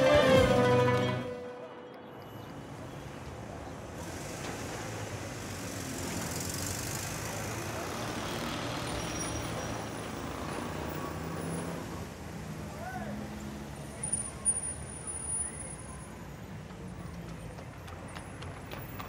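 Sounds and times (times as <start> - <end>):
street traffic noise: 0.0 - 19.0.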